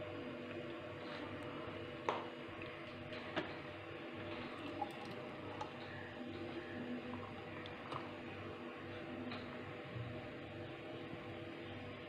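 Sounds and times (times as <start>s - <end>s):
faint steady hum: 0.0s - 12.0s
milkshake pouring into glass: 4.3s - 6.0s.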